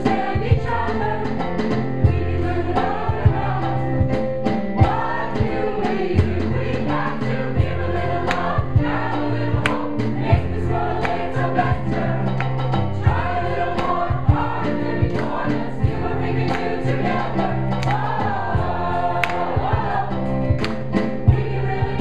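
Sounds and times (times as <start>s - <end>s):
mixed choir singing: 0.0s - 22.0s.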